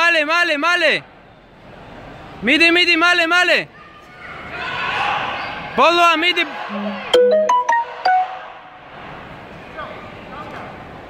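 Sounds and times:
murmur of large hall: 0.0s - 11.0s.

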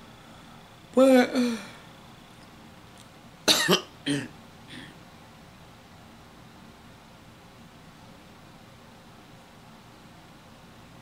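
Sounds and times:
woman coughing: 3.5s - 4.9s.

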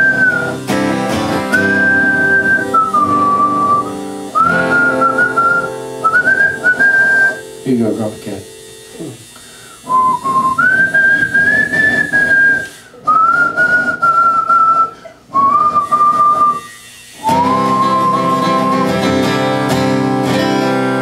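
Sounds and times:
man whistling slow melody: 0.0s - 7.6s, 9.8s - 21.0s
quiet acoustic guitar: 0.0s - 21.0s.

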